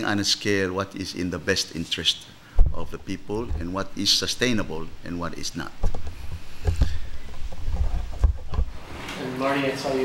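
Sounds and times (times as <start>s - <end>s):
soft knocks: 2.6s - 3.8s, 5.8s - 8.8s.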